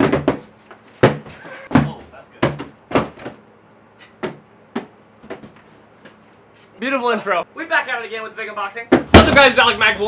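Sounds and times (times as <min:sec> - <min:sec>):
cardboard boxes thudding: 0:00.0 - 0:03.4, 0:04.2 - 0:05.6.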